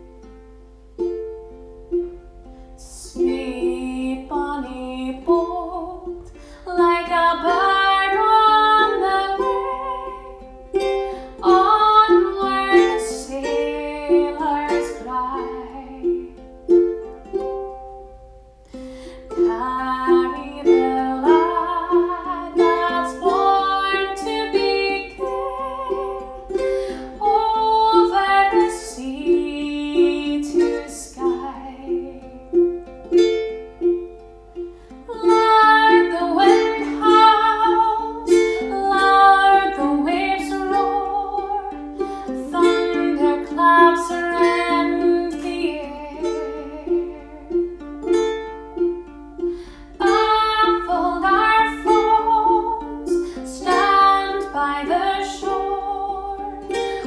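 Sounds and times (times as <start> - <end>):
ukulele strumming: 0.0 - 57.0
woman singing: 2.8 - 17.5, 19.2 - 33.2, 35.0 - 48.2, 49.8 - 57.0.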